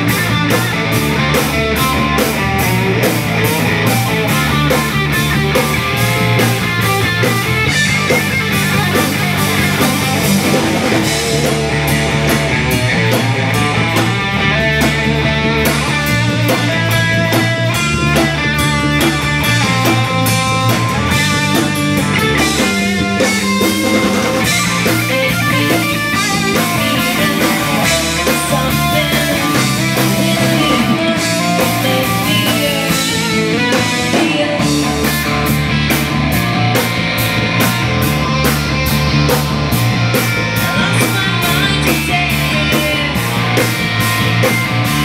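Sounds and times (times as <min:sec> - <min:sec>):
drum kit with cymbals: 0:00.0 - 0:45.0
electric guitar: 0:00.0 - 0:45.0.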